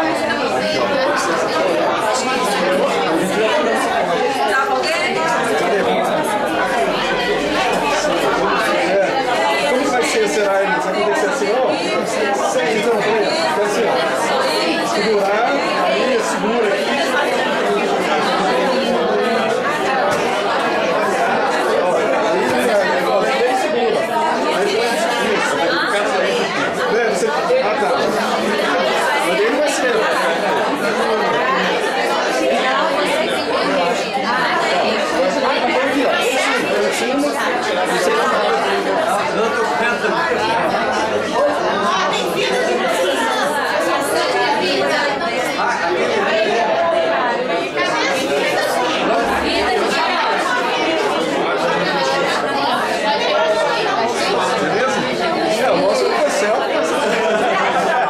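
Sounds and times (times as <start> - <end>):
crowd babble: 0.0 - 58.0.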